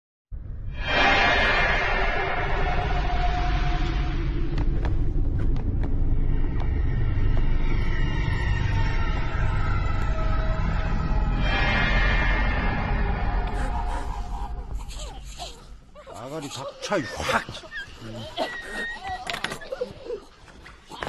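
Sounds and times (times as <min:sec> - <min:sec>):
low rumbling drone: 0:00.4 - 0:15.2.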